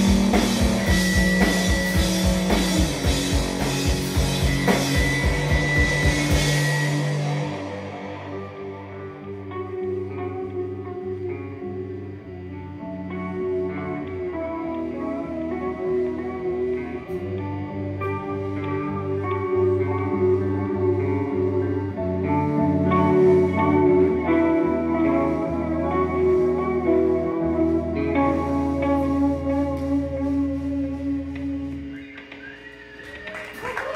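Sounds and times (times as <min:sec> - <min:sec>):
electric guitars ringing: 0:00.0 - 0:33.9
live rock band playing: 0:00.0 - 0:33.9.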